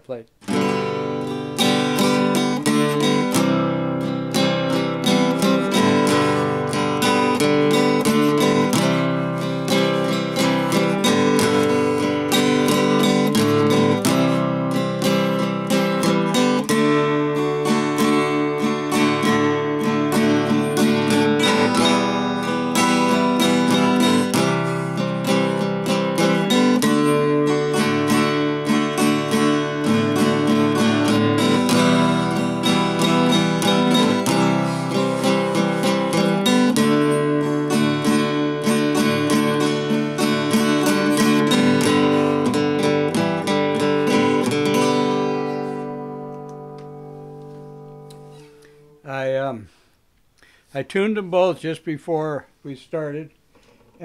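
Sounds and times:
acoustic guitar strumming: 0:00.3 - 0:52.2.

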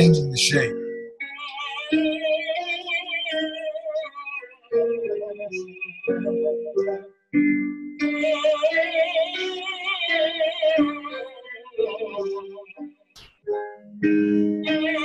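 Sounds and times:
man singing with vibrato: 0:00.0 - 0:00.7.

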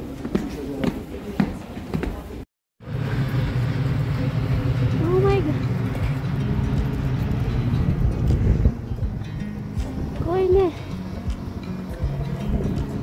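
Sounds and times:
low crowd rumble: 0:00.0 - 0:13.0.

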